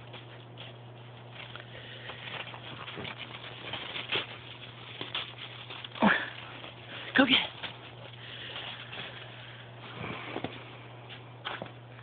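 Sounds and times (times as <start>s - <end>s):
footsteps crunching in snow: 0.0s - 11.8s.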